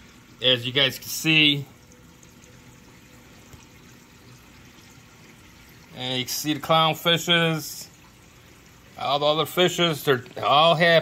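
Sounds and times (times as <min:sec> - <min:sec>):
aquarium water circulating: 0:00.0 - 0:11.0.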